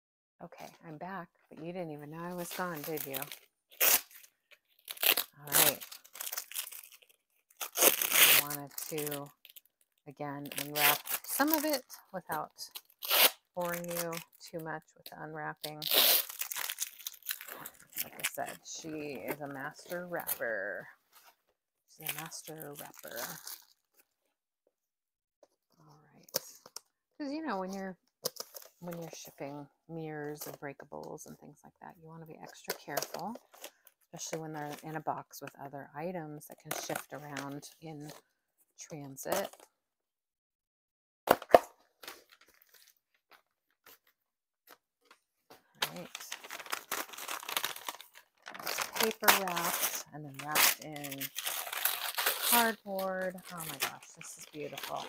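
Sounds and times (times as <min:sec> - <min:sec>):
person speaking: 0:00.4 - 0:03.3, 0:05.2 - 0:06.0, 0:08.2 - 0:09.3, 0:10.1 - 0:12.7, 0:13.6 - 0:16.1, 0:17.5 - 0:20.9, 0:21.9 - 0:23.4, 0:45.8 - 0:46.5, 0:48.5 - 0:51.4, 0:52.4 - 0:55.0
packing paper crinkling: 0:02.3 - 0:11.8, 0:15.8 - 0:20.5, 0:42.0 - 0:55.0.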